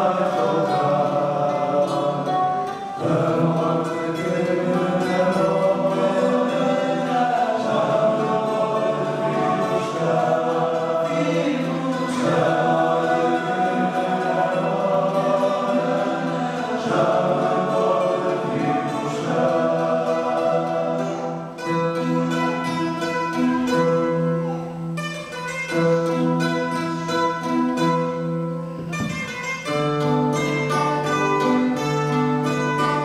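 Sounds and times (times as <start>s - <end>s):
male choir singing: 0.0s - 22.6s
strummed guitars and mandolins: 0.0s - 33.0s.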